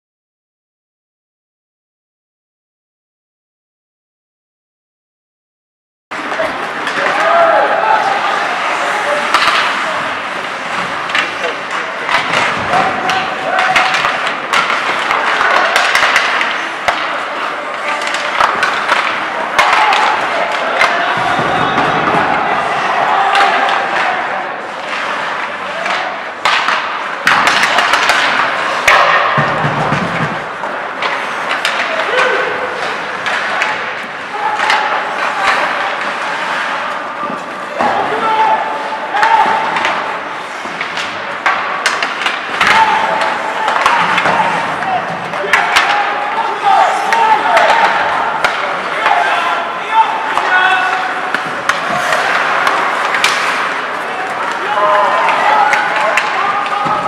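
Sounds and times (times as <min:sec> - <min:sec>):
players calling out: 0:06.2 - 0:29.5, 0:30.4 - 0:57.0
hockey sticks and puck clacking: 0:06.2 - 0:57.0
skates scraping on ice: 0:06.2 - 0:57.0.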